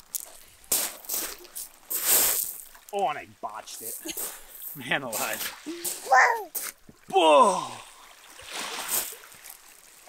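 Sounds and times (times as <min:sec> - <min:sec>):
waves washing over pebbles: 0:00.2 - 0:06.6, 0:07.2 - 0:10.0.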